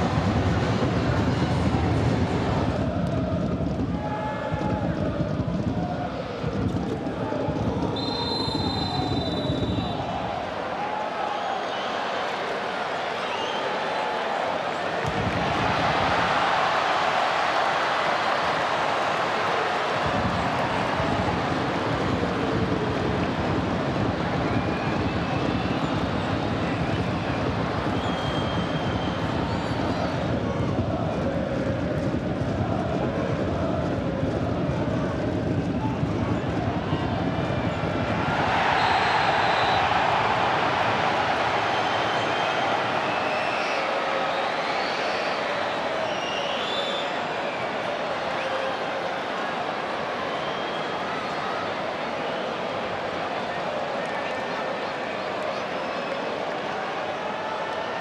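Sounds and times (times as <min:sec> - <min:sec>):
stadium crowd noise: 0:00.0 - 0:58.0.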